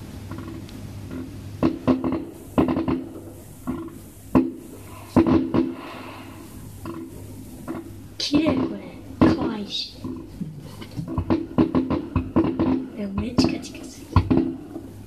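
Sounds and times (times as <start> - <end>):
fireworks bursting with bangs: 1.2 - 9.9, 10.5 - 15.0.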